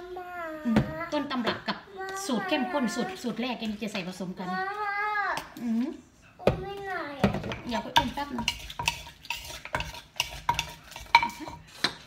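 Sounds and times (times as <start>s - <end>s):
metal spoon clinking and scraping: 7.7s - 12.0s.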